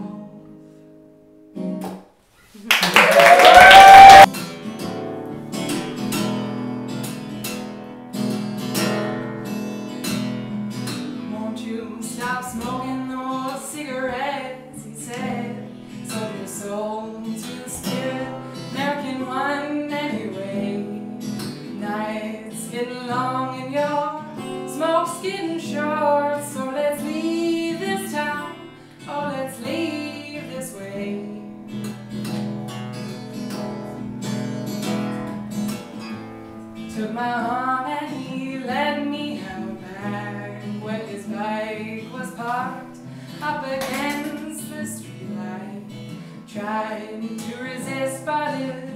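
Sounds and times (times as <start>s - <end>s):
acoustic guitar: 0.0s - 3.1s, 3.7s - 48.9s
woman singing: 11.1s - 31.7s, 36.8s - 48.9s.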